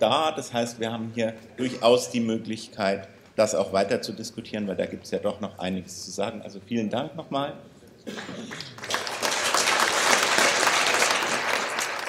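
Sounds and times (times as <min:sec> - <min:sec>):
audience applauding: 0:08.4 - 0:12.0.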